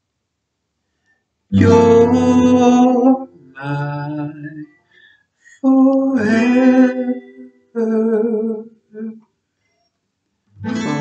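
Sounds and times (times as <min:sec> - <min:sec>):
man singing wordless notes: 0:01.6 - 0:04.7, 0:05.5 - 0:09.2.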